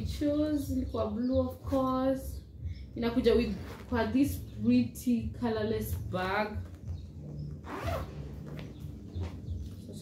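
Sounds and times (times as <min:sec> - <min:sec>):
zipper being pulled open: 0:03.4 - 0:04.0, 0:07.6 - 0:08.6.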